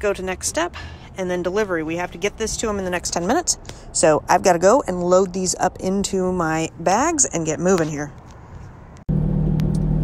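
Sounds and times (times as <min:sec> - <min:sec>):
car engine hum: 0:00.0 - 0:10.0
road rumble: 0:00.0 - 0:10.0.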